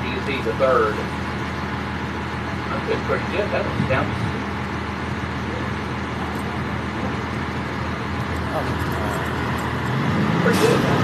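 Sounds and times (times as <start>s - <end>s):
city traffic: 0.0s - 11.0s
tyre and road noise: 0.0s - 11.0s
vehicle engine running: 0.0s - 11.0s.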